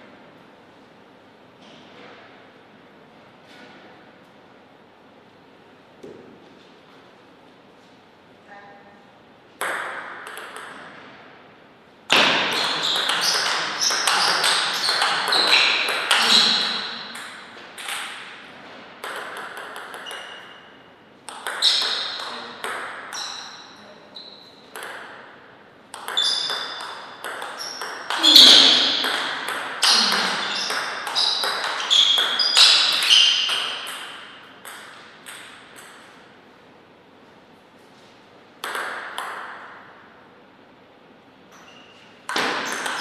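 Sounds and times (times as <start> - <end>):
table tennis ball hits: 9.6 - 11.2, 12.1 - 36.2, 38.6 - 40.0, 41.5 - 43.0.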